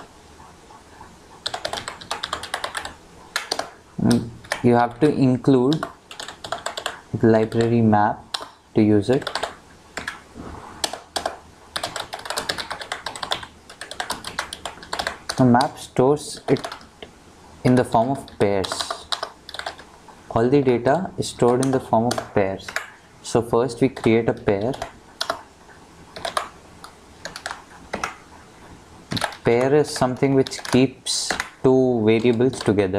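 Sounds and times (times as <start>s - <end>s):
typing on computer keyboard: 1.4s - 5.0s, 5.6s - 10.2s, 10.8s - 17.1s, 17.7s - 19.9s, 21.4s - 23.0s, 23.8s - 25.5s, 26.1s - 28.2s, 29.1s - 32.8s.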